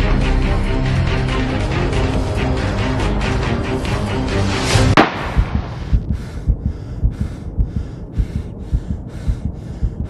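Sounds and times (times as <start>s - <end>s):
heartbeat sound effect: 5.2s - 10.0s
heavy panting breaths: 5.6s - 10.0s.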